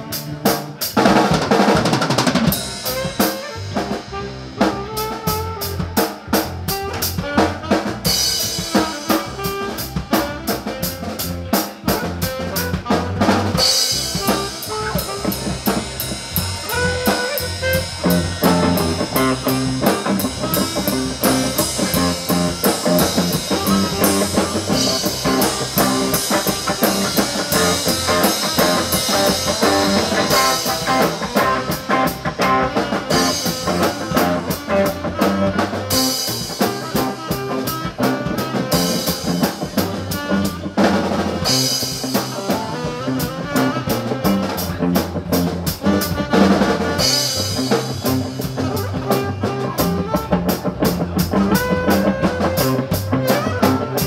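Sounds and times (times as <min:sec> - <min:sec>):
drum kit: 0:00.0 - 0:54.0
electric guitar: 0:00.0 - 0:54.0
saxophone playing lead: 0:00.0 - 0:54.0.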